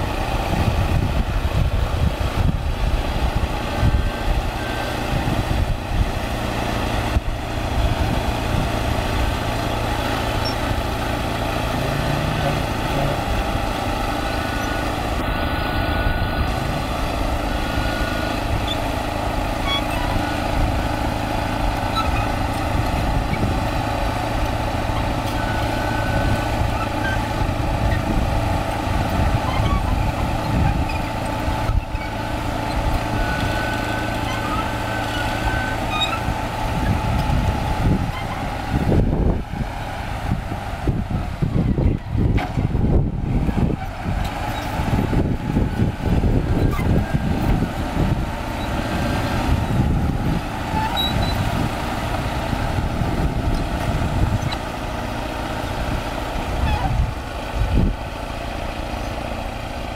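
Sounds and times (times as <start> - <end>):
bulldozer diesel engine running: 0.0 - 59.9
short high machine squeaks: 10.3 - 10.7, 19.6 - 20.4, 21.8 - 23.5, 29.4 - 37.0, 50.7 - 51.6.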